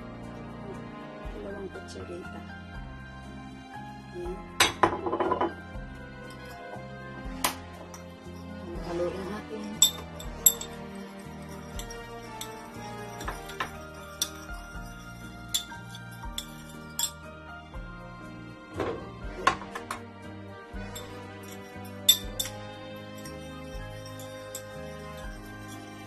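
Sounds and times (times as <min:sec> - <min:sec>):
background music: 0:00.0 - 0:26.0
metal spoon clinking against bowl: 0:09.6 - 0:17.2, 0:20.9 - 0:26.0.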